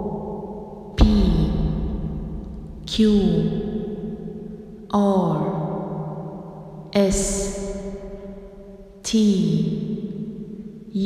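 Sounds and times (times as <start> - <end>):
voice-changed person speaking: 1.0 - 1.6, 2.9 - 3.5, 7.0 - 7.6, 9.1 - 9.7.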